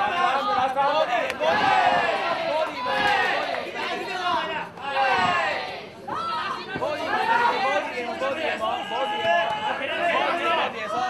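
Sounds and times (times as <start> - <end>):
voices shouting over one another: 0.0 - 11.0.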